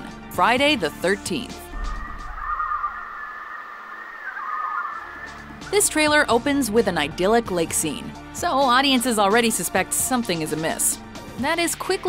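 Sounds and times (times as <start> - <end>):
eerie high wavering tones: 1.7 - 6.1.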